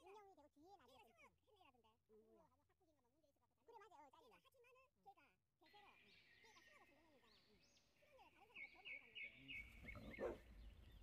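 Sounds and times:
birds chirping: 5.7 - 11.0.

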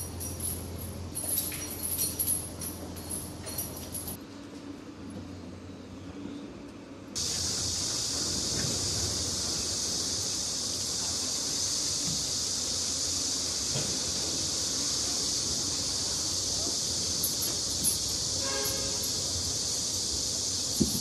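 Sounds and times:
low outdoor background: 0.0 - 21.0
cicada chorus droning: 7.2 - 21.0.

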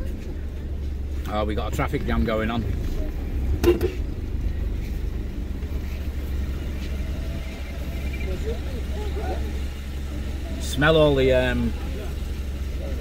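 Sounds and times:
car engine rumble from cabin: 0.0 - 13.0
faint voices outside: 0.0 - 13.0.

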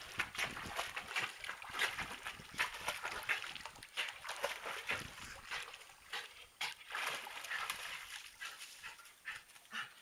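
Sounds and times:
water splashing and dripping: 0.0 - 10.0.

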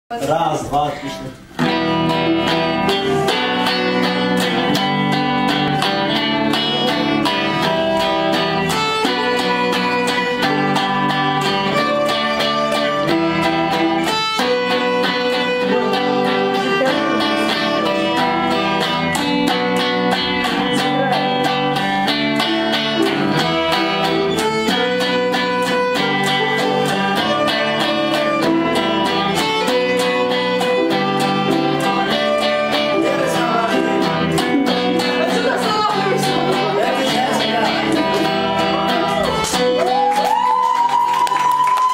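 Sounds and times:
violin: 0.6 - 41.9
electric guitar: 0.8 - 41.9.

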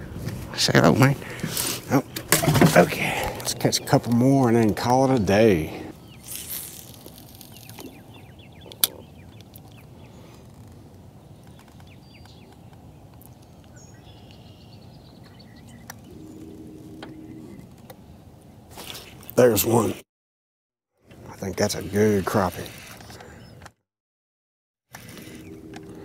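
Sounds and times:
faint bird chirps: 6.0 - 10.8.

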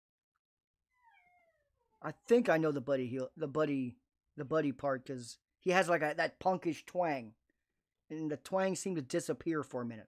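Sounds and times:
faint animal call: 0.9 - 2.1.

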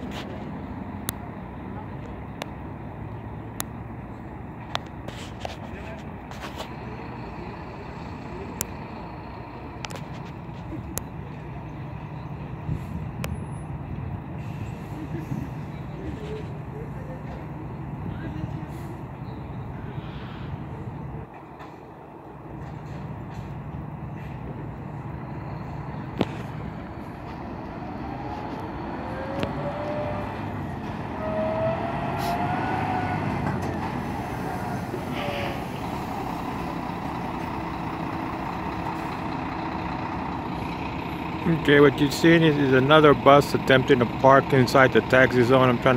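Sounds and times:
bus engine humming: 0.0 - 45.9.

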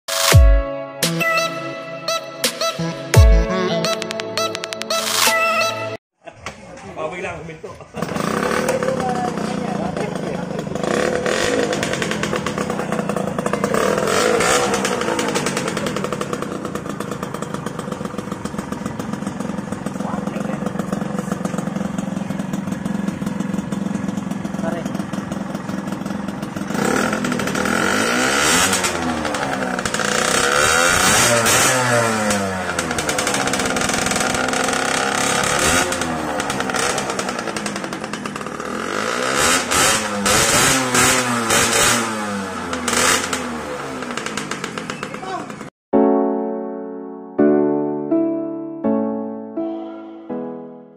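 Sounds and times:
two-stroke motorcycle engine revving: 7.2 - 45.7.

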